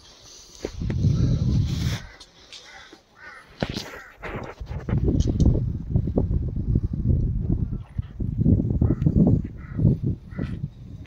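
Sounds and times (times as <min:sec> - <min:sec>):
bird calling: 0:01.1 - 0:04.3.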